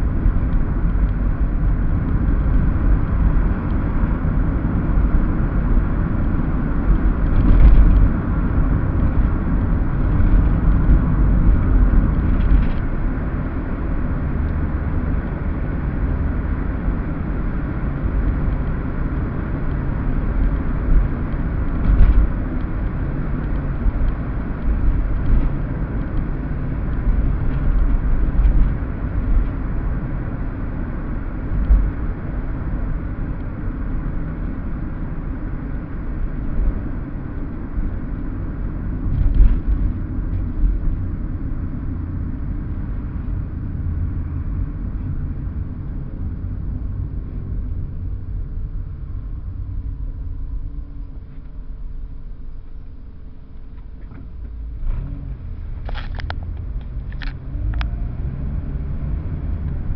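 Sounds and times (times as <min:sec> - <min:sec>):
car road noise rumble: 0:00.0 - 0:59.9.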